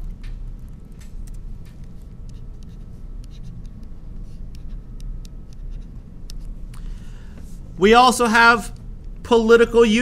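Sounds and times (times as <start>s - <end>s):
stylus ticking and scratching: 0.0s - 6.8s
low steady hum: 0.0s - 10.0s.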